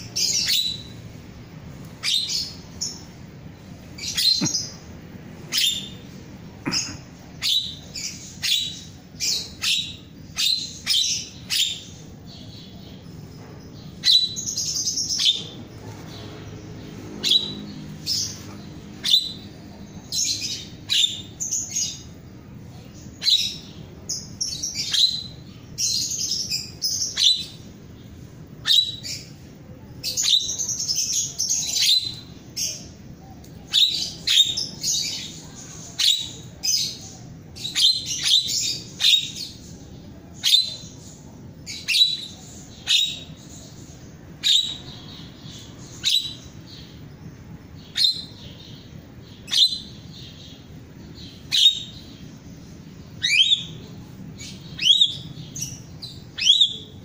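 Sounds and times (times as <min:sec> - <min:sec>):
myna bird calling: 0:00.0 - 0:57.0.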